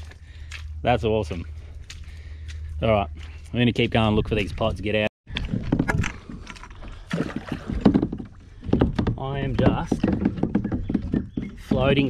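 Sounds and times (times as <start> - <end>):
paddle splashing in water: 5.6 - 11.9.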